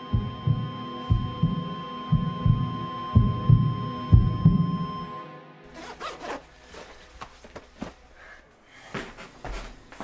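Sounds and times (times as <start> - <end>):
jacket zipper zipping: 5.7 - 6.9
clothing rustling: 5.7 - 8.2.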